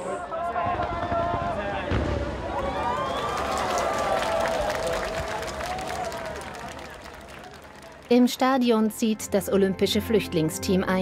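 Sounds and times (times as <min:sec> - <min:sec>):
fireworks going off: 0:00.5 - 0:08.1.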